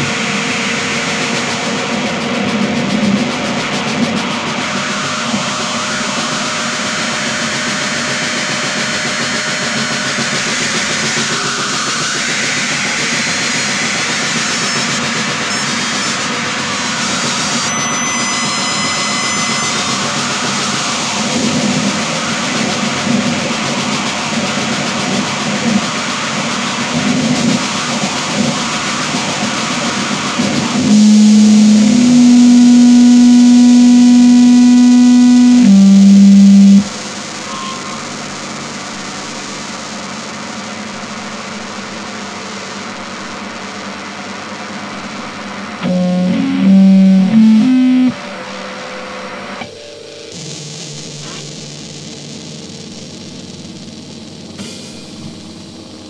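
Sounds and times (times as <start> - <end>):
loud steady low tone: 30.8 - 37.0, 45.8 - 48.2.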